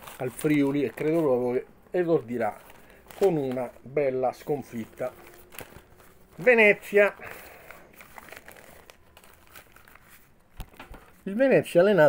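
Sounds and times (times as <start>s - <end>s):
newspaper pages rustling: 0.0s - 11.4s.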